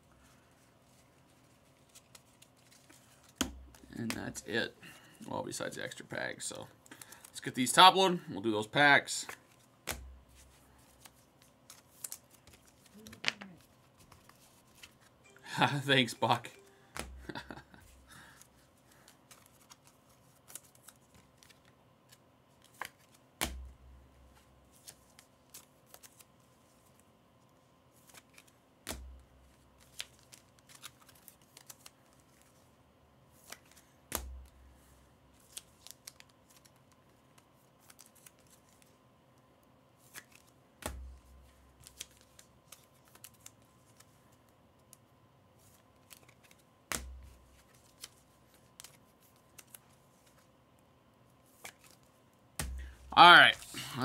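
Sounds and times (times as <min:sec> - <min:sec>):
cards clicking and rustling: 0:00.9 - 0:04.5, 0:09.2 - 0:23.6, 0:24.7 - 0:27.0, 0:28.0 - 0:32.6, 0:33.4 - 0:34.5, 0:35.4 - 0:38.9, 0:40.0 - 0:45.0, 0:45.6 - 0:50.5, 0:51.4 - 0:53.7.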